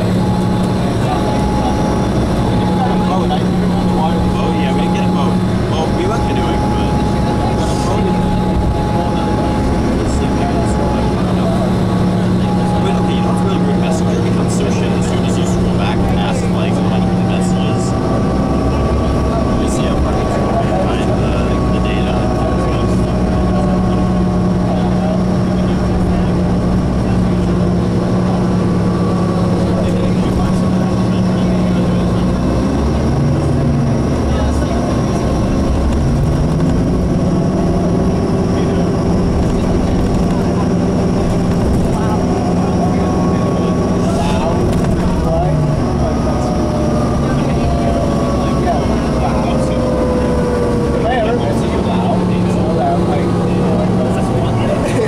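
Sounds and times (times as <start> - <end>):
bus drivetrain hum: 0.0 - 55.0
road and tyre noise: 0.0 - 55.0.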